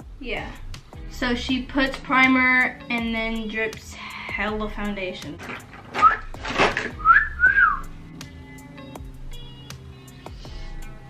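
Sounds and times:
woman whistling: 0:07.0 - 0:07.9.

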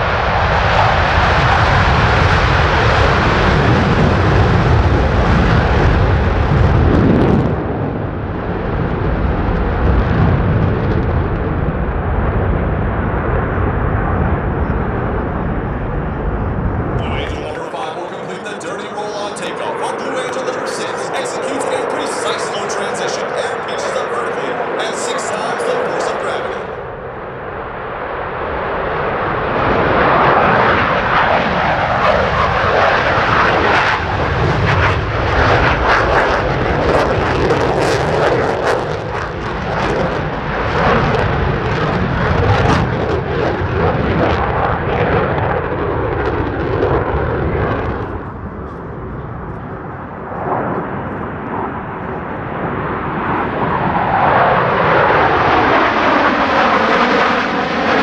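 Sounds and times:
jet engines roaring: 0:00.0 - 0:58.0.

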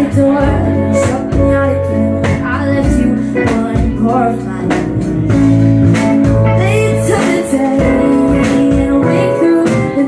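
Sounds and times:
drums: 0:00.0 - 0:10.0
electric bass: 0:00.0 - 0:10.0
electric guitar: 0:00.0 - 0:10.0
keyboard: 0:00.0 - 0:10.0.

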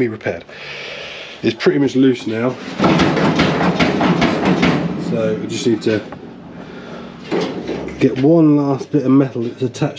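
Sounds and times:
sheet steel scraping and rattling: 0:02.0 - 0:06.1, 0:07.0 - 0:09.9
sharp metal knocks: 0:02.7 - 0:06.0.

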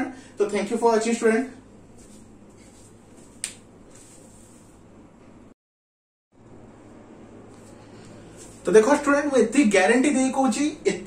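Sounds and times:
room hiss and hum: 0:00.0 - 0:05.6, 0:06.4 - 0:11.0.

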